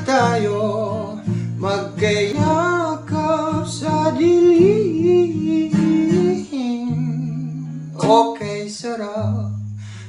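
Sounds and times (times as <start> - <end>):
person singing: 0.0 - 9.6
plucked acoustic guitar: 0.0 - 10.0.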